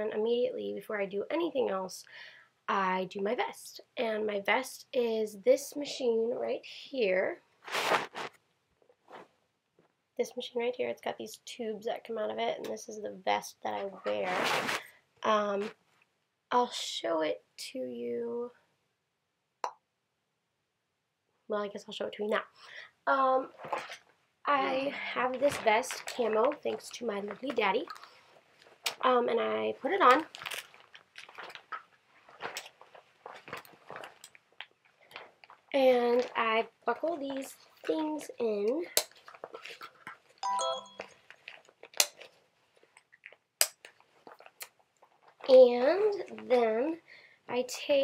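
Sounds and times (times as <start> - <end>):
faint handling rustle: 24.7 - 28.8, 29.8 - 36.4.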